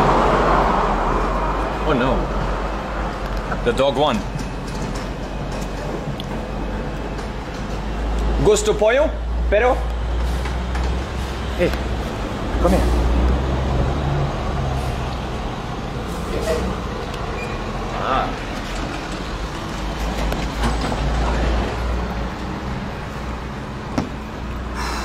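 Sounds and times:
traffic engine and tyre rumble: 0.0 - 25.0.

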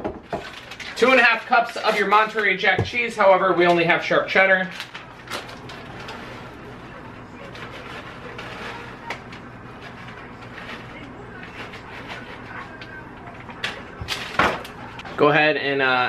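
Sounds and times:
plastic bag crinkling: 0.3 - 3.2, 4.0 - 13.0.

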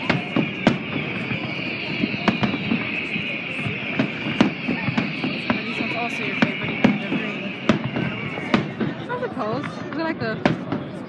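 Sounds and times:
fireworks bursting with sharp bangs: 0.0 - 11.0.

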